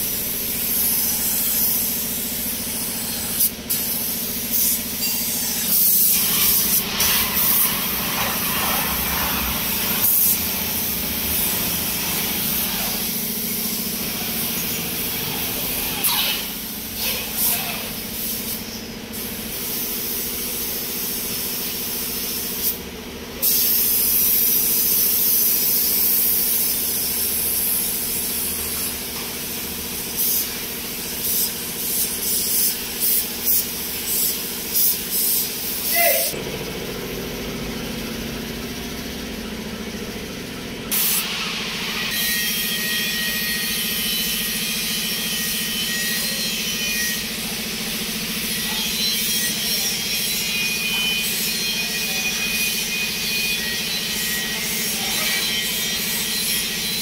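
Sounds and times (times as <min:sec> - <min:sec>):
paint spray gun hissing: 0:00.0 - 0:22.8, 0:23.4 - 0:36.4, 0:40.9 - 0:42.2.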